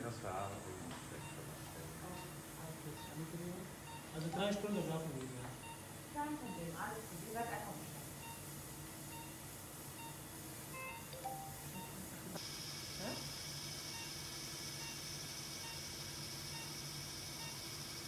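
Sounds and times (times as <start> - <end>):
equipment hum: 0.0 - 18.0
patient monitor beeping: 1.2 - 7.0, 8.2 - 8.5, 9.1 - 12.2, 14.8 - 15.0, 15.6 - 17.7
steady high hiss: 6.2 - 18.0.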